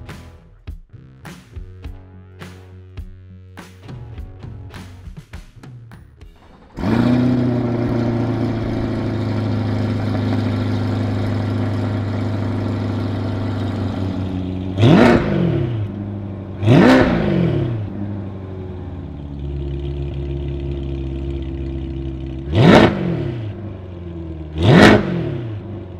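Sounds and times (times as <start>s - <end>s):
car engine starting and idling: 6.2s - 25.9s
engine revving blips: 6.4s - 25.9s.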